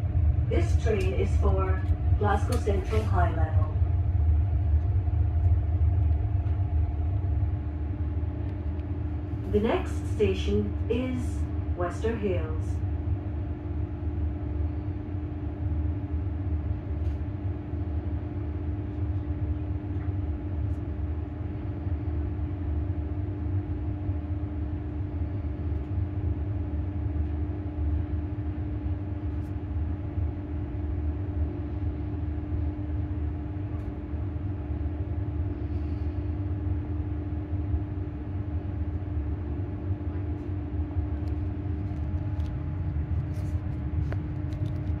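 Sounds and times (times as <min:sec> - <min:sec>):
train running rumble: 0:00.0 - 0:31.8, 0:32.8 - 0:45.0
constant electric hum: 0:00.0 - 0:45.0.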